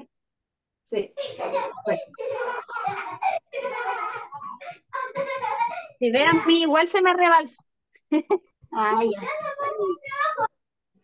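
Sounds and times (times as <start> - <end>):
voices talking over video call: 0.9 - 10.9.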